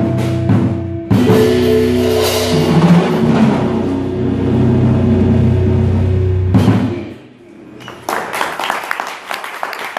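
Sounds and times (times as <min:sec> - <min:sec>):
rumbling drum roll: 0:00.0 - 0:07.3
jazz band holding low chord: 0:00.0 - 0:07.4.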